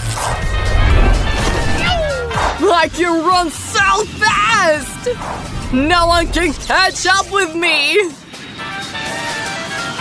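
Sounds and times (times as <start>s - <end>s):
hissing rush: 0.0s - 2.4s
background music: 0.0s - 10.0s
rising tone: 0.2s - 2.6s.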